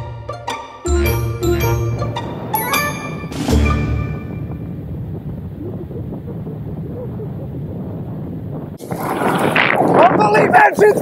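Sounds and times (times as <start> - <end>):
wind rushing over microphone: 2.0 - 11.0
parachute canopy opening: 8.8 - 10.2.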